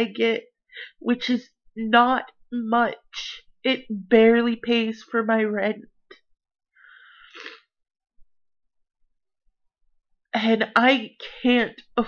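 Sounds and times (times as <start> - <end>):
woman breathing in: 6.8 - 7.4.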